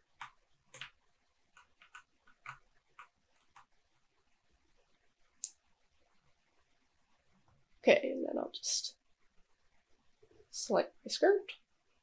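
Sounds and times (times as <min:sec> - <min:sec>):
computer keyboard and mouse clicks: 0:00.2 - 0:01.0, 0:01.6 - 0:03.7.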